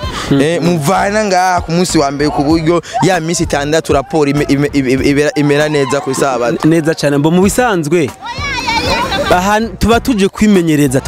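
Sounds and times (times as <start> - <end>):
children shouting at play: 0.0 - 0.3, 2.0 - 7.4, 8.0 - 9.5
man's voice: 0.0 - 8.2, 9.2 - 11.0.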